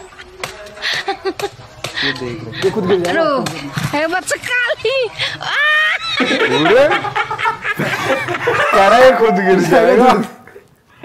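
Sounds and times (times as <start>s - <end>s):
young men laughing: 0.8s - 3.4s, 5.2s - 10.4s.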